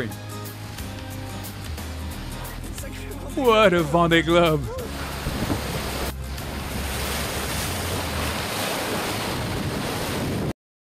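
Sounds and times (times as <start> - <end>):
rush of open sea: 0.0 - 10.6
wind buffeting microphone: 5.0 - 6.1, 6.8 - 10.5.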